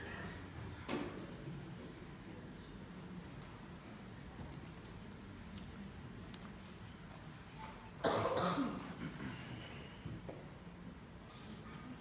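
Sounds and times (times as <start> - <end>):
person coughing: 8.0 - 9.6.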